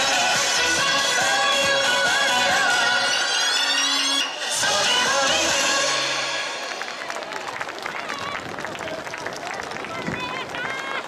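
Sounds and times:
crowd talking and calling: 0.0s - 11.0s.

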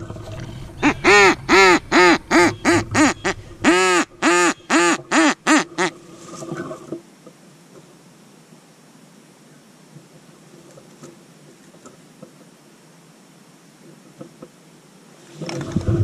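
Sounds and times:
duck quacking: 0.8s - 5.9s.

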